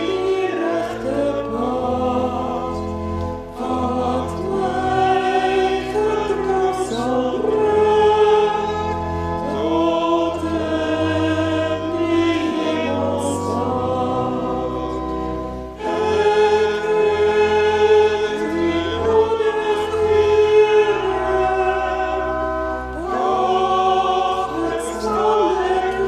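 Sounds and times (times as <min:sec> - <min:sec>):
choir singing a slow hymn: 0:00.0 - 0:26.0.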